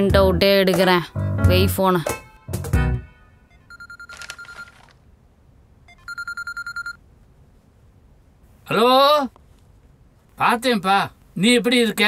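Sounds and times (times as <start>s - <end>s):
mobile phone ringing: 3.4s - 5.0s, 5.9s - 7.0s.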